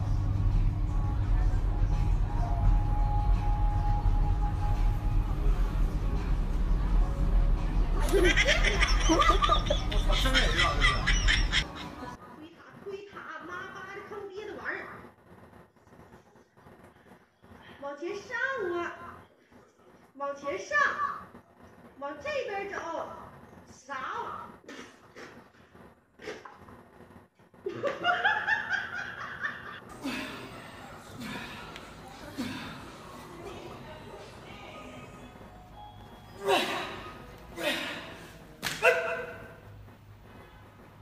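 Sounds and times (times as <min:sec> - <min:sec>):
high-pitched laughter: 0:08.0 - 0:11.9.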